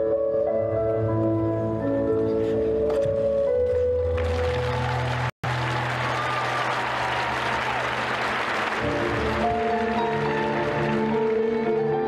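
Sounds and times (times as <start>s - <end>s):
skating program music: 0.0s - 12.0s
arena crowd applauding: 4.2s - 11.7s.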